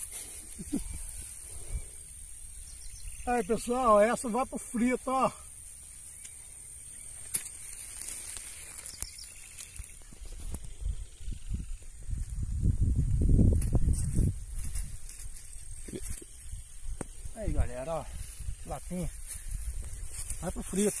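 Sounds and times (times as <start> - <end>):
steady high-pitched hiss: 0.0 - 21.0.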